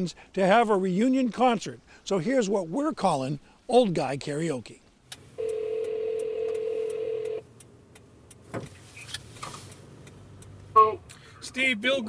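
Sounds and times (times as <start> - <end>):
telephone ringback tone: 5.4 - 7.4.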